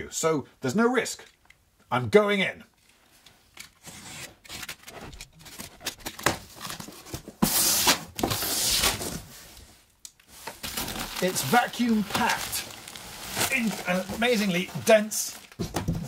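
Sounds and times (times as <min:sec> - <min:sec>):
cardboard scraping: 0:03.8 - 0:09.6
plastic wrapping rustling: 0:04.5 - 0:16.0.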